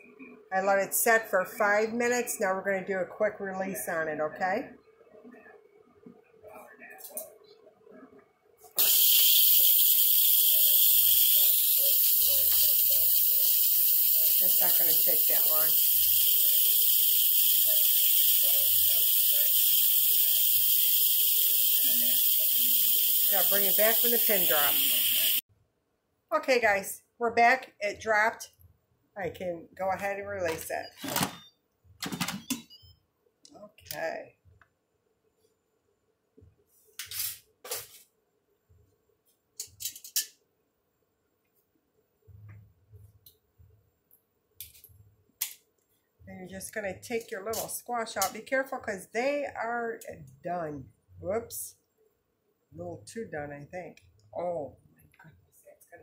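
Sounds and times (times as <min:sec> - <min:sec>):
steam hissing from pressure cooker: 0:08.8 - 0:25.4.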